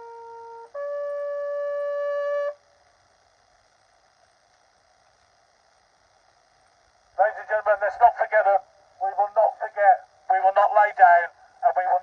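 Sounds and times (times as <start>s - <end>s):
bugle long note: 0.0s - 2.6s.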